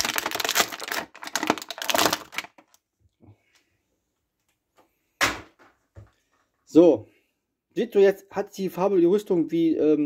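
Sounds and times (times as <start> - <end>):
plastic bag crinkling: 0.0 - 2.8.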